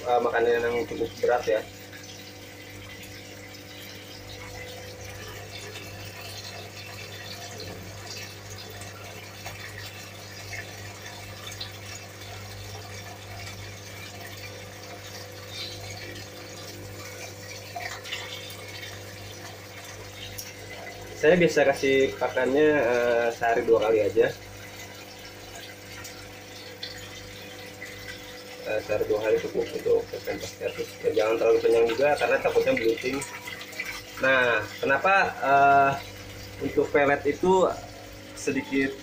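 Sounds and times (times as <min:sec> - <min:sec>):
fish tank water splashing: 0:00.0 - 0:39.0.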